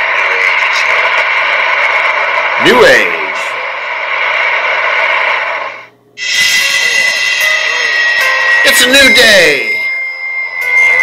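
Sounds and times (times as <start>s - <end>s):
moving train running: 0.0s - 11.0s
steady held tones: 1.0s - 11.0s.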